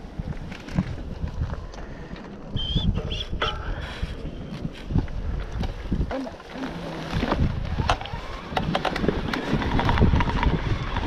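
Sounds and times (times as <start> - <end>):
bike clicks and rattles: 0.0 - 2.6, 3.4 - 11.0
tyre rumble: 0.0 - 11.0
wind on microphone: 0.0 - 11.0.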